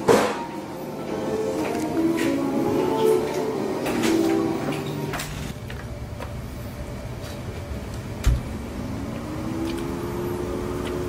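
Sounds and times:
low outdoor rumble: 5.4 - 11.0
low hum rising in pitch: 6.0 - 11.0.

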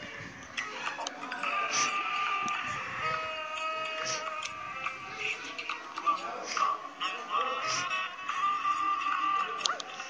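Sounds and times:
children's tv theme music from phone: 0.0 - 10.0.

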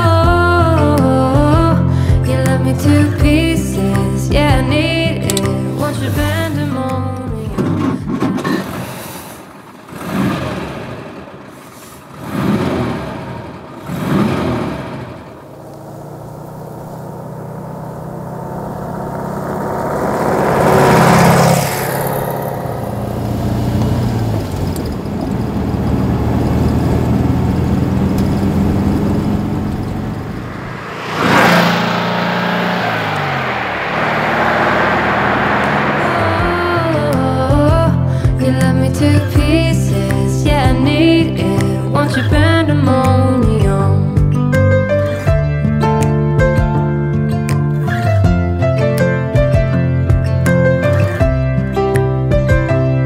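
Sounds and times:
car engine starting and revving: 7.6 - 44.1.

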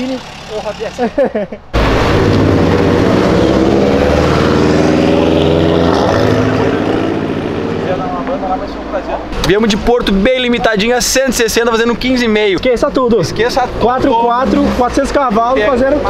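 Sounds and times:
car engine pulling away: 0.0 - 16.0.

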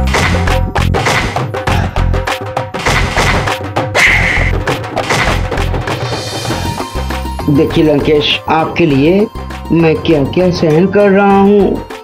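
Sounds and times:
deep booming drum beats: 0.0 - 7.4
fast percussion strikes: 2.7 - 7.8.

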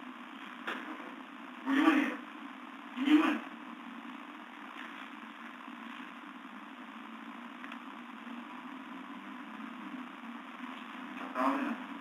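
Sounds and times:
low hum with hiss: 0.0 - 12.0.

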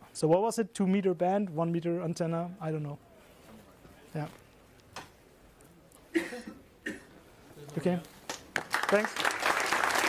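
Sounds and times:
person coughing: 6.1 - 7.2.

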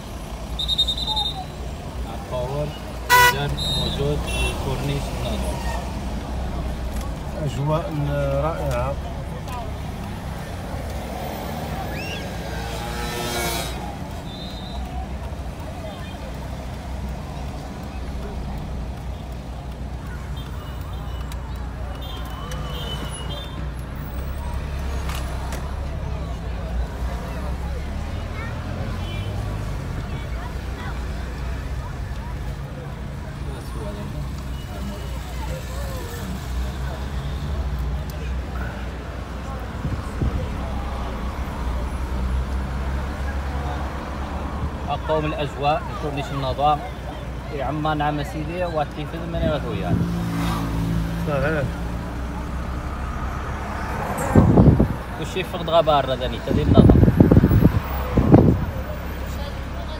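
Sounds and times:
indistinct voices outside: 0.0 - 59.9
road noise: 0.0 - 59.9
car engine rumble: 48.5 - 59.9.

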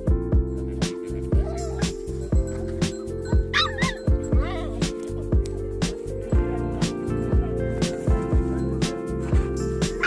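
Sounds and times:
music with steady beat: 0.0 - 10.0
dog whining: 1.3 - 2.1, 3.3 - 4.9.

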